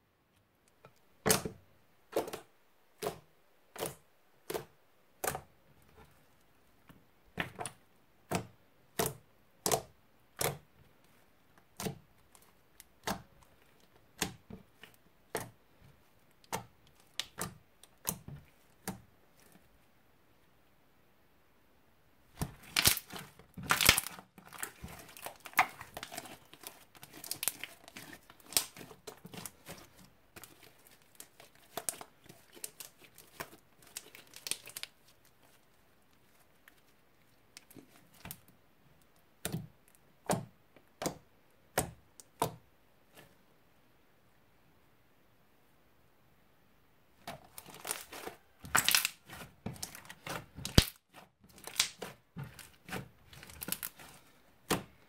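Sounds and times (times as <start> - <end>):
slime crackling and popping: 16.4 - 19.0, 22.4 - 36.9, 47.2 - 54.9.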